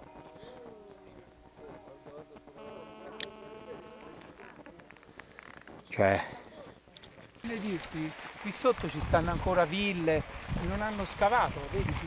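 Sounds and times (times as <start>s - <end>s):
faint distant voices: 0.0s - 8.8s.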